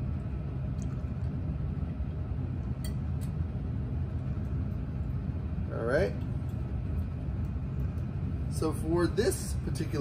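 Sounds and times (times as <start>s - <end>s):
ventilation rumble: 0.0s - 10.0s.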